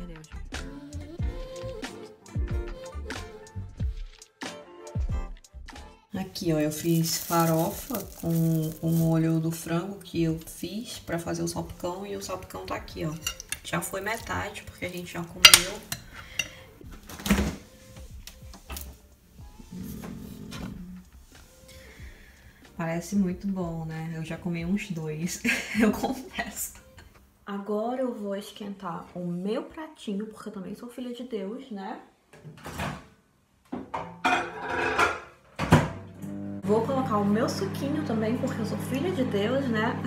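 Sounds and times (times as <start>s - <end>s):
soft background music: 0.0s - 31.7s, 34.4s - 40.0s
ceramic plate clattering: 13.1s - 14.2s, 15.4s - 16.6s, 34.0s - 35.4s
microwave humming: 35.8s - 40.0s.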